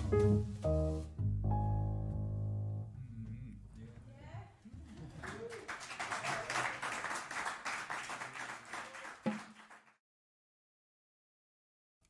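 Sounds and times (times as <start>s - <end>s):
piano trio tune: 0.0s - 3.8s
audience applauding: 4.9s - 10.0s
voices among clapping: 5.1s - 10.0s.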